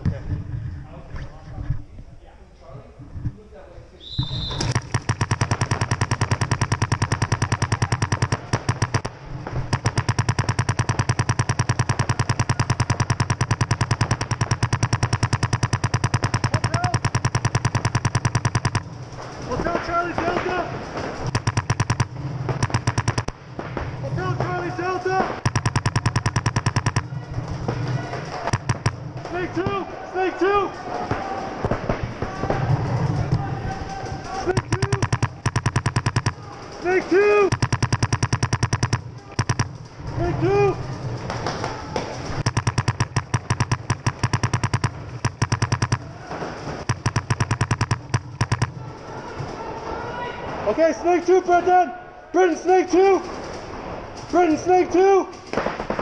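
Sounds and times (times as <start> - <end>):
paintball markers firing: 4.2 - 23.4, 24.4 - 29.8, 31.1 - 49.7
players shouting: 24.2 - 37.7, 45.2 - 46.9.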